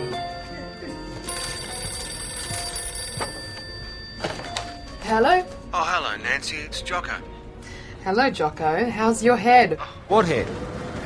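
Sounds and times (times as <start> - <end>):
telephone bell ringing: 0.0 - 5.5.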